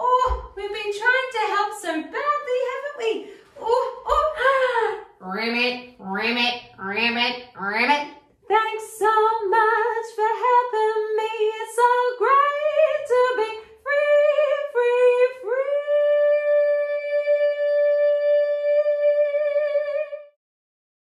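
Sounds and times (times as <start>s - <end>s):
woman singing unaccompanied: 0.0s - 20.4s.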